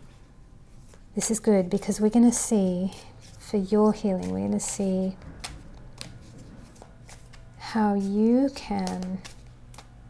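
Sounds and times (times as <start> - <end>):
cards shuffled by hand: 2.8 - 4.6, 5.4 - 10.0
small clicks of cards: 8.7 - 9.9.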